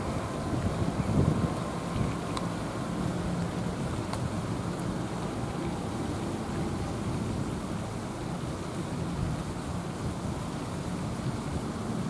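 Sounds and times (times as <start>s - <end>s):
low outdoor background rumble: 0.0s - 12.0s.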